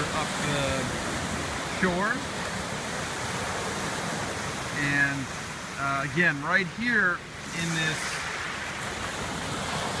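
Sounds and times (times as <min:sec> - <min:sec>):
waves washing over sand and pebbles: 0:00.0 - 0:10.0.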